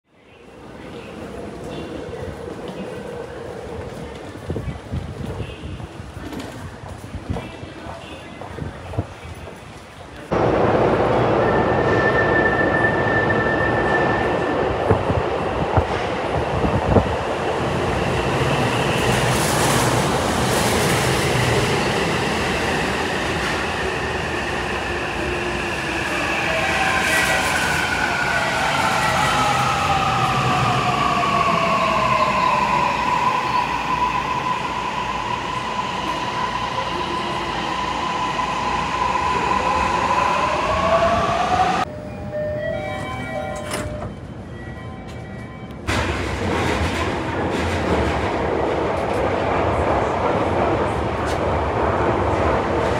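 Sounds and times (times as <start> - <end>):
subway train running noise: 0.1 - 52.9.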